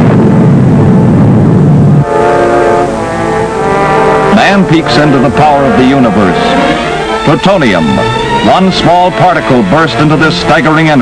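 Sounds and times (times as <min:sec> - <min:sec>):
explosion low rumble: 0:00.0 - 0:02.2
held orchestral chord: 0:02.0 - 0:11.0.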